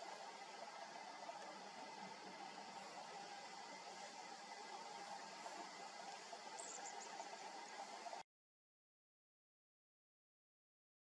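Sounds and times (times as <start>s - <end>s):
outdoor hiss with low drone: 0.0s - 8.2s
faint high-pitched chirps: 6.5s - 7.4s.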